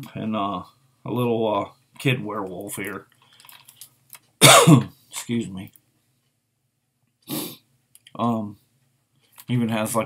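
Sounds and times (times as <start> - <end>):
man coughing: 4.4 - 4.9.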